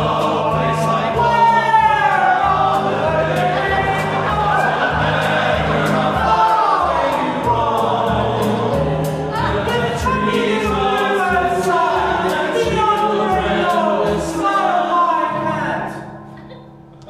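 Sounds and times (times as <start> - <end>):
instrumental accompaniment with beat: 0.0 - 14.7
men's chorus singing: 0.0 - 16.1.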